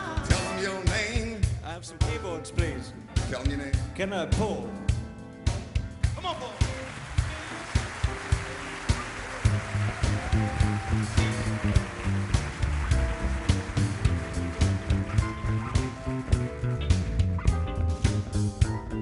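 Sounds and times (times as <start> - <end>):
steady drum beat: 0.0 - 18.9
funk band playing: 0.0 - 19.0
electric bass line: 9.3 - 19.0.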